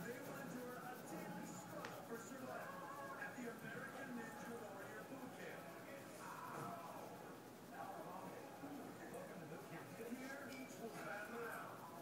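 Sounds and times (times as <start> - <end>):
faint speech: 0.0 - 12.0.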